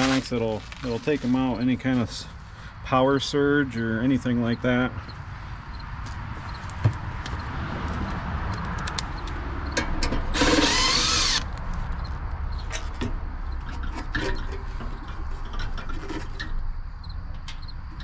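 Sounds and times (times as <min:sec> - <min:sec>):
cordless driver running: 0:10.3 - 0:11.6
clicks and knocks of metal cover: 0:12.7 - 0:16.6.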